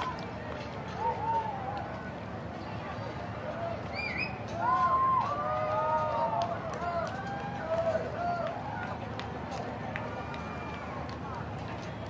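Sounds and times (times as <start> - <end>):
outdoor crowd noise: 0.0 - 12.0.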